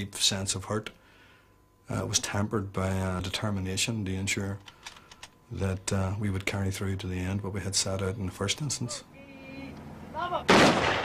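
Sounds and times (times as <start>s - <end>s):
loud sharp bang: 10.5s - 11.0s.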